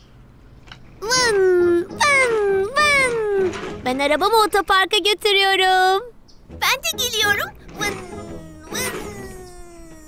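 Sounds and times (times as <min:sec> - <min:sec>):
child imitating car engine: 0:01.0 - 0:03.6, 0:06.9 - 0:10.0
child speaking: 0:01.0 - 0:10.0.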